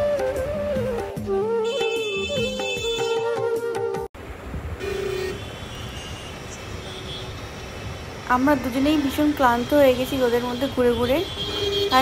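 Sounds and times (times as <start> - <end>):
vehicle horn toot: 1.6 - 3.2, 4.8 - 7.4, 10.5 - 12.0.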